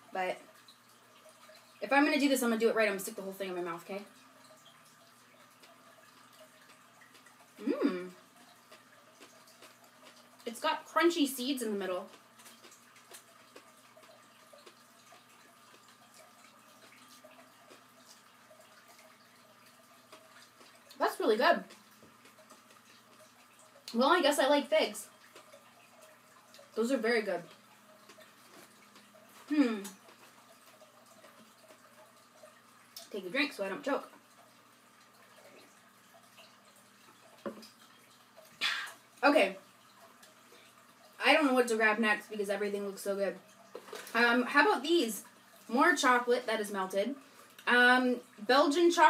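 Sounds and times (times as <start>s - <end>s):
low room hum: 0.0s - 49.0s.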